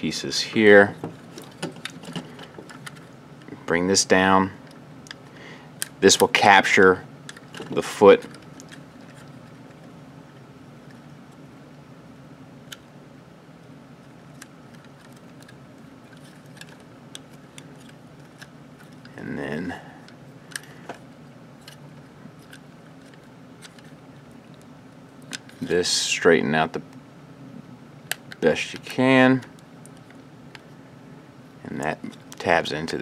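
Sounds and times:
steady low hum: 0:00.0 - 0:33.0
plastic parts clicking and tapping: 0:14.3 - 0:19.2.

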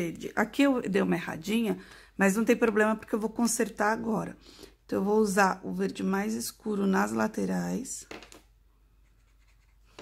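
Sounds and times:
marker scratching on paper: 0:09.0 - 0:10.0.

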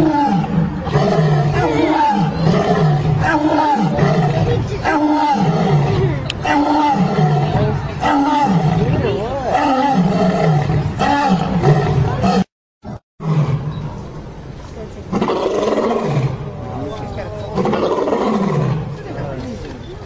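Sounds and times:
lions roaring grunts: 0:00.0 - 0:13.7, 0:15.1 - 0:19.0.

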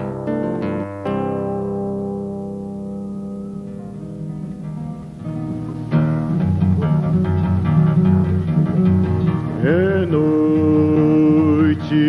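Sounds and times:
acoustic guitar strumming: 0:00.0 - 0:12.0
man singing: 0:09.4 - 0:12.0.

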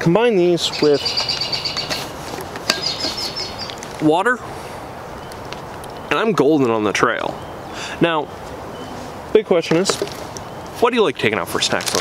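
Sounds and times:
bird trilling: 0:00.6 - 0:03.9.

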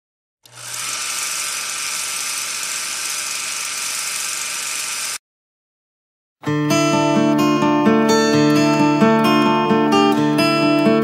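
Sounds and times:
film projector whirring clatter: 0:00.4 - 0:05.2.

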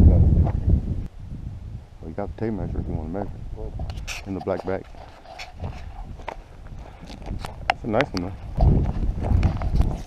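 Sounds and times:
footsteps on gravel: 0:03.9 - 0:10.0.

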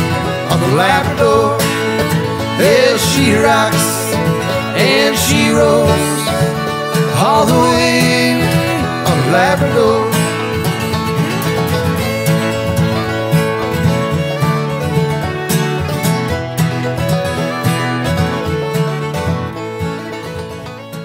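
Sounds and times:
fiddle: 0:00.0 - 0:21.0
strummed acoustic guitar: 0:00.0 - 0:21.0.

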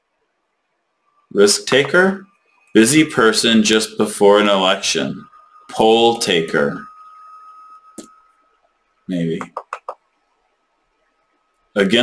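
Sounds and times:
faint steady tone: 0:00.0 - 0:12.0.

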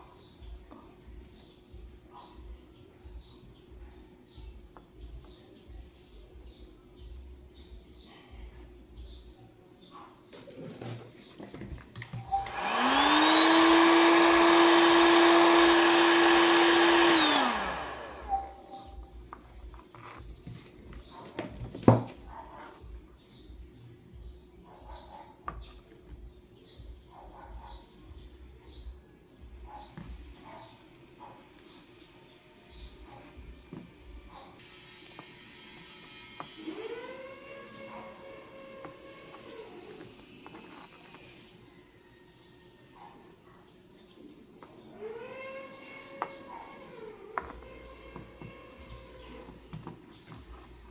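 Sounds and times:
small electric motor running: 0:12.3 - 0:18.7, 0:32.9 - 0:41.6.

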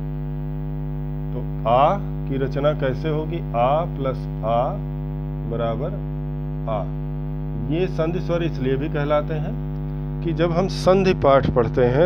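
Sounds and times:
electrical hum: 0:00.0 - 0:12.0
person speaking: 0:06.6 - 0:07.0, 0:07.6 - 0:12.0.

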